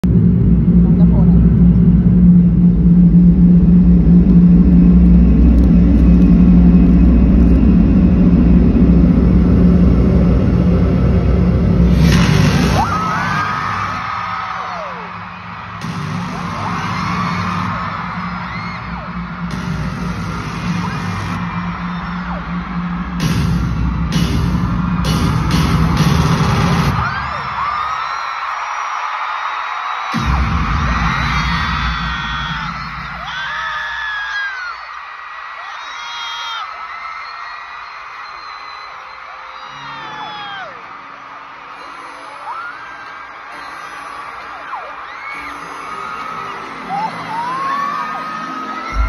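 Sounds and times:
low bass drone over a pa: 0:00.0 - 0:12.9
concert music: 0:00.0 - 0:34.8, 0:38.9 - 0:49.0
crowd screaming and cheering: 0:00.0 - 0:49.0.

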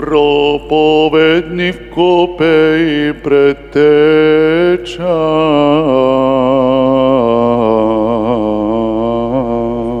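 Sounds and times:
man singing chant into microphone: 0:00.0 - 0:10.0.

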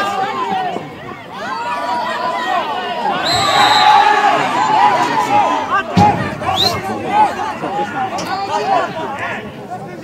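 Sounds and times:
players shouting: 0:00.0 - 0:09.6
referee whistle blast: 0:03.2 - 0:04.2, 0:06.4 - 0:06.9
thump: 0:05.9 - 0:06.5.

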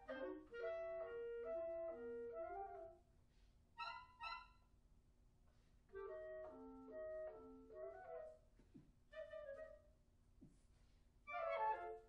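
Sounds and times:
clarinet ensemble playing: 0:00.0 - 0:02.9, 0:06.0 - 0:08.2, 0:11.3 - 0:12.0.

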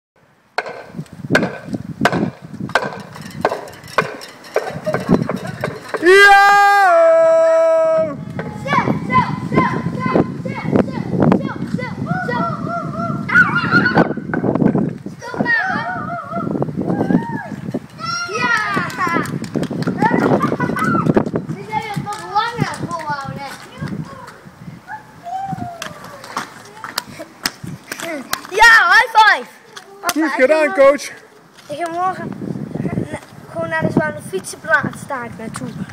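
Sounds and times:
sharp knocks: 0:00.6 - 0:06.1
children calling out and cheering: 0:04.8 - 0:14.3, 0:15.1 - 0:35.7.

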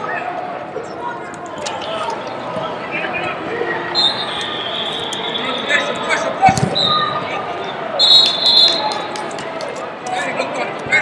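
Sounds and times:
murmur of voices: 0:00.0 - 0:11.0
referee whistle blowing: 0:03.9 - 0:05.9, 0:06.7 - 0:07.2, 0:08.0 - 0:09.0.

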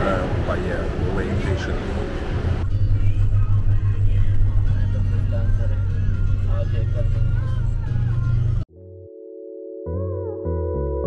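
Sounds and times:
car engine and tyres rumbling: 0:00.0 - 0:08.6
music with singing: 0:02.6 - 0:08.7.

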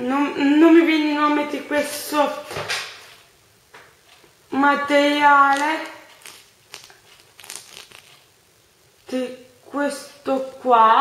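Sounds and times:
sequined sweater rustling: 0:05.2 - 0:08.4.

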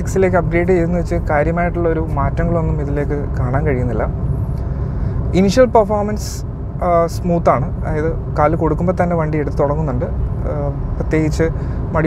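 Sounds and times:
man talking: 0:00.0 - 0:04.2, 0:05.3 - 0:12.0
car engine and road noise: 0:00.0 - 0:12.0.

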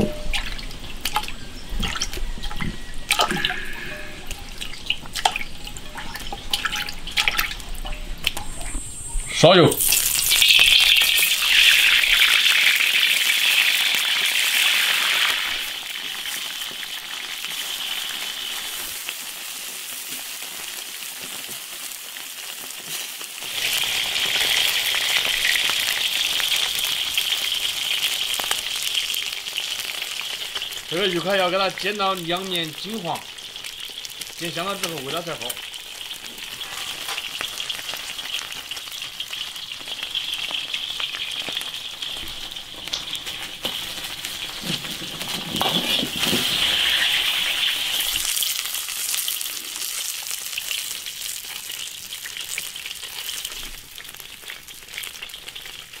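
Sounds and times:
water dripping and splashing: 0:00.0 - 0:08.8
running water hiss: 0:02.8 - 0:20.2, 0:40.0 - 0:50.2.

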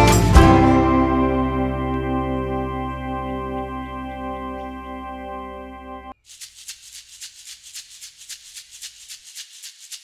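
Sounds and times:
shaker playing fast rhythm: 0:06.2 - 0:10.0.

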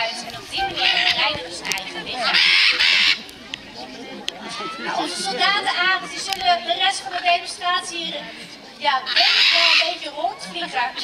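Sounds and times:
macaw squawking: 0:00.6 - 0:01.4, 0:02.1 - 0:03.3, 0:09.0 - 0:10.1.

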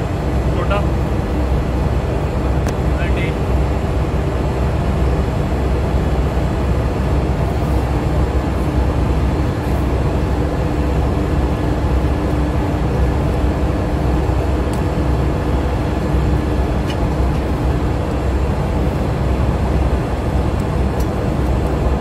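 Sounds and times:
diesel machinery droning: 0:00.0 - 0:22.0.

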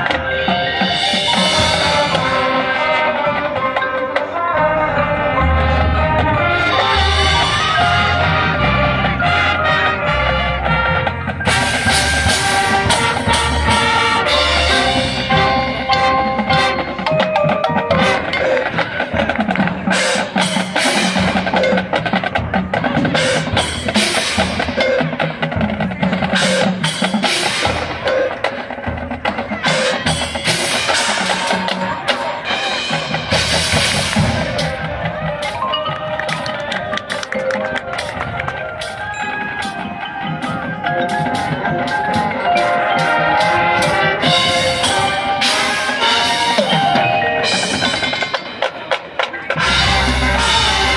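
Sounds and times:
mallet keyboards: 0:00.0 - 0:50.9
marching band playing: 0:00.0 - 0:50.9.

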